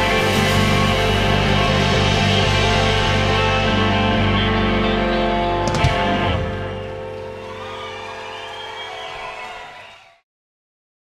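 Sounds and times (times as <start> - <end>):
blues-rock band sustained chord: 0.0 - 8.8.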